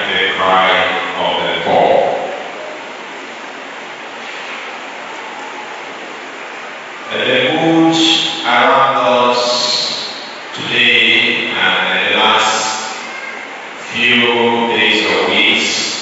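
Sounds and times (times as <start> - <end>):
hall background noise: 0.0 - 16.0.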